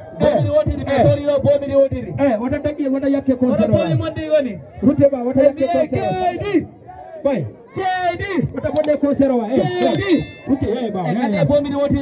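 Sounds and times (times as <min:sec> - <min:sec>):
high metallic ding: 0:09.8 - 0:10.6.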